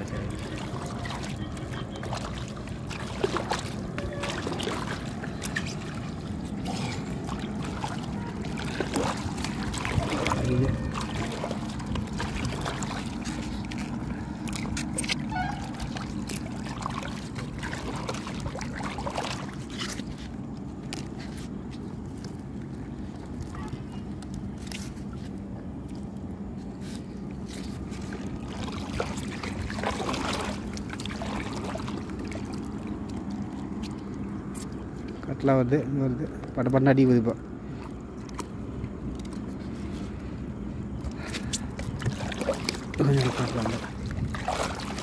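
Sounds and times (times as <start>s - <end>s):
steady low hum: 0.0s - 45.0s
water sloshing and dripping: 0.0s - 45.0s.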